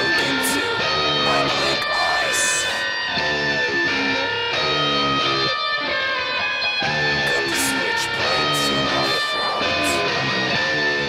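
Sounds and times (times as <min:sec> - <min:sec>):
guitar riff: 0:00.0 - 0:11.0.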